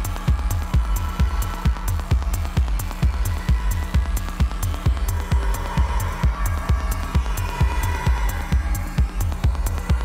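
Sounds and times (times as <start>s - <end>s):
hi-hats: 0.0s - 10.0s
techno kick drum: 0.0s - 10.0s.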